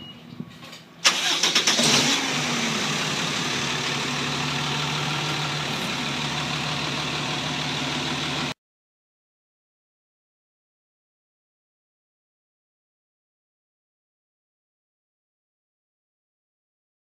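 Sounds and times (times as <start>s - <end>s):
truck engine cranking and idling: 1.0s - 8.6s.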